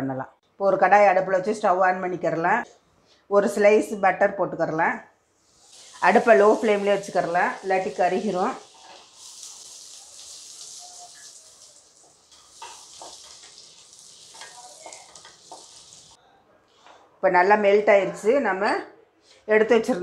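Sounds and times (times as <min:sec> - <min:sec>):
butter sizzling in a pan: 0:05.4 - 0:16.2
wooden spatula scraping a pan: 0:05.5 - 0:16.2.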